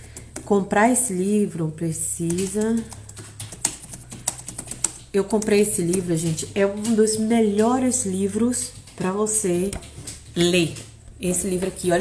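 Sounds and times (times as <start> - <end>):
handling clicks and taps: 2.2 - 11.7.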